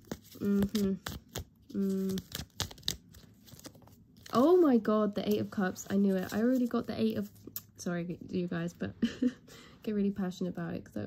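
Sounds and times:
cards snapping: 0.0 - 4.3
cards rustling: 0.0 - 7.5
person humming: 0.4 - 2.4.

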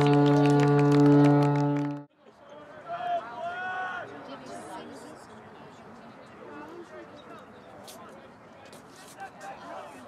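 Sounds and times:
steady horn blast: 0.0 - 2.1.

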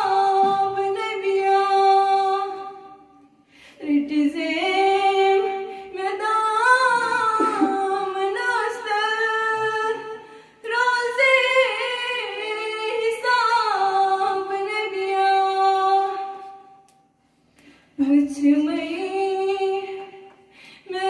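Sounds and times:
girl singing into a microphone: 0.0 - 3.1, 3.8 - 16.7, 18.0 - 20.2.

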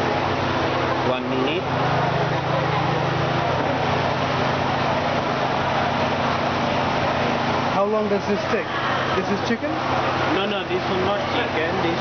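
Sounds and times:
crowd chatter: 0.0 - 12.0
low mechanical motor hum: 0.0 - 12.0.

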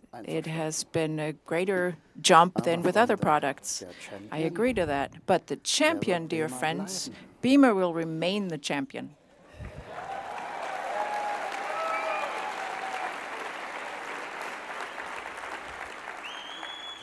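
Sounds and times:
audience applauding and cheering: 9.6 - 17.0
shouts from audience: 9.9 - 13.2
whistle: 16.2 - 17.0.

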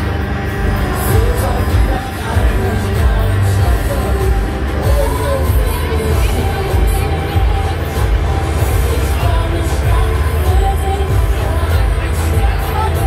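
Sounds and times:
crowd voices and shouts: 0.0 - 13.0
music with deep bass: 0.0 - 13.0.

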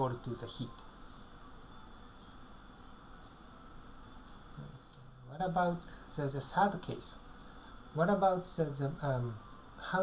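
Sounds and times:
faint hiss and low hum: 0.0 - 10.0.

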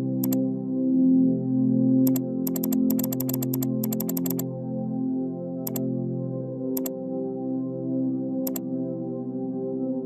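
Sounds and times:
synthesizer background music: 0.0 - 10.0
computer mouse clicks: 2.1 - 4.4.

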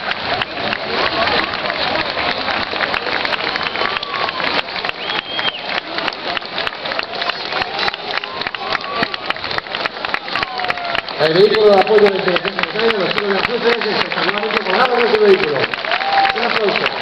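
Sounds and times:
crowd applauding: 0.0 - 17.0
faint voices: 0.0 - 17.0.

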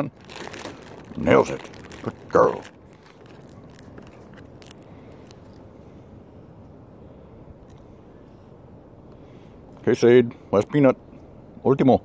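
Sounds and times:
peanut shells crunching: 0.0 - 5.6
low background rumble: 0.0 - 12.0.

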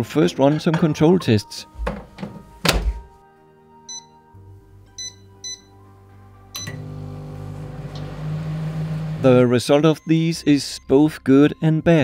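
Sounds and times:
microwave keypad beeps: 3.9 - 4.2, 5.0 - 5.8, 6.6 - 7.0
microwave oven humming: 6.6 - 9.2.

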